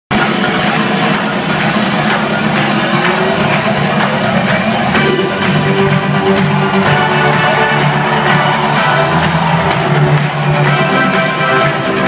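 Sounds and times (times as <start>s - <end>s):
loud live music: 0.1s - 12.0s.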